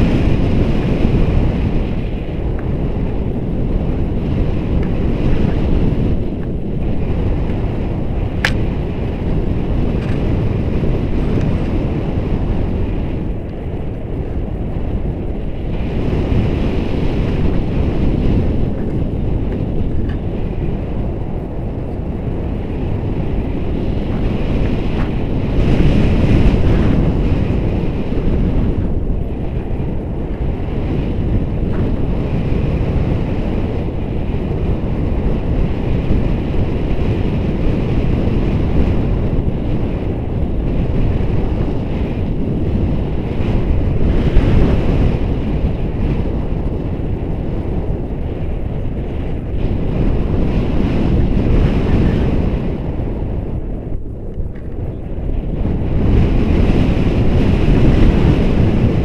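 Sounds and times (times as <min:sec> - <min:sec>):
wind rushing over microphone: 0:00.0 - 0:59.0.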